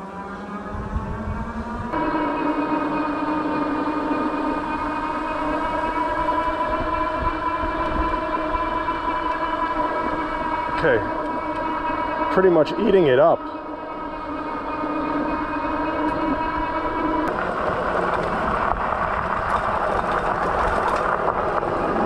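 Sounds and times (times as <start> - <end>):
electric scooter motor whining: 0.0 - 22.0
low wind rumble on microphone: 0.0 - 22.0.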